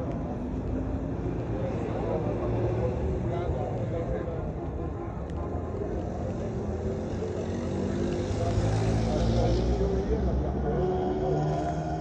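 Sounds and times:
chatter of passers-by: 0.0s - 12.0s.

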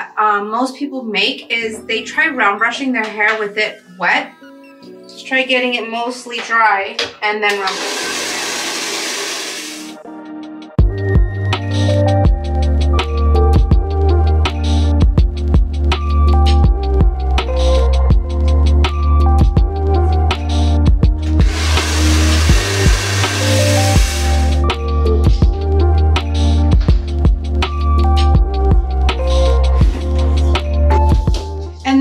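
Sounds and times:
hair dryer blowing: 7.5s - 10.0s, 21.2s - 24.6s
electronic music with beat: 10.8s - 32.0s.

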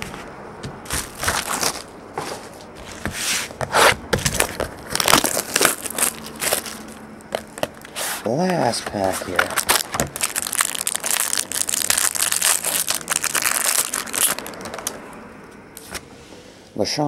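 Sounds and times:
plastic shrink-wrap crinkling: 4.2s - 15.0s.

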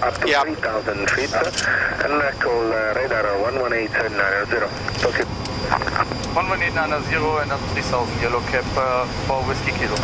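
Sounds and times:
flight deck background noise: 0.0s - 10.0s
pilot speaking on radio: 0.0s - 10.0s
thin high whine: 0.0s - 10.0s.

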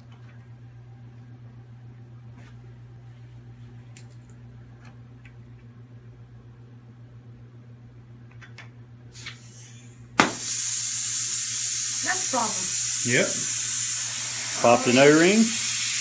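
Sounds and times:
air hissing from regulator: 9.1s - 16.0s
loud pop: 10.2s - 10.4s.

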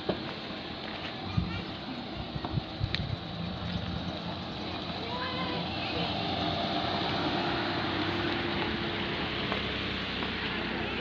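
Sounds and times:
van engine low rumble: 0.0s - 11.0s.

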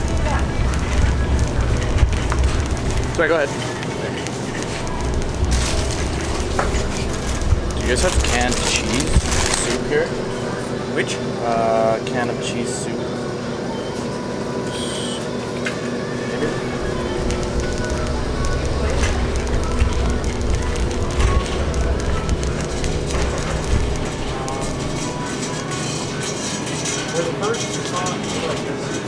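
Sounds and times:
shopping cart wheels rolling: 0.0s - 11.2s, 15.6s - 29.0s
indistinct voices: 0.0s - 29.0s.

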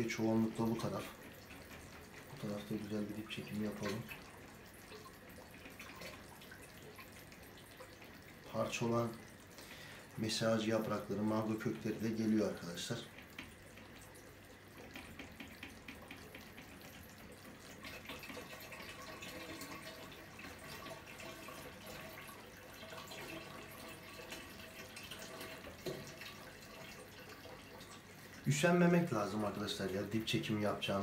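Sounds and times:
water drips: 0.0s - 31.0s
water trickling through siphon hose: 0.0s - 31.0s.

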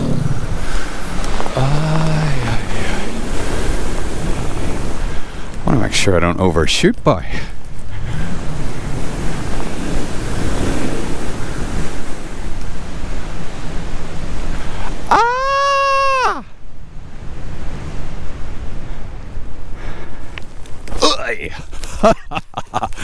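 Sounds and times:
wind rushing over microphone: 0.0s - 23.0s.

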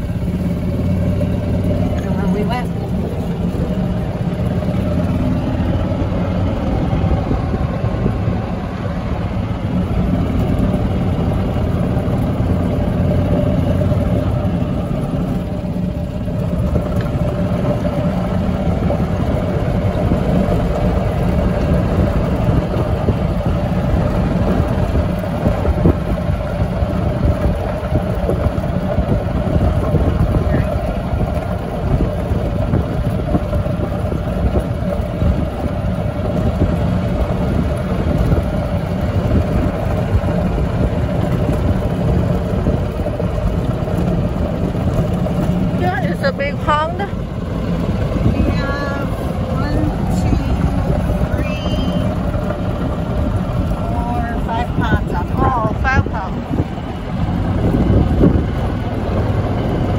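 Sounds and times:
golf cart motor hum: 0.0s - 59.9s
wind noise: 0.0s - 59.9s.

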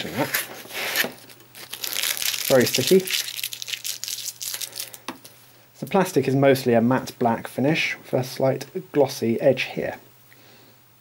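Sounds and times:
plastic film crinkling: 0.0s - 5.4s.

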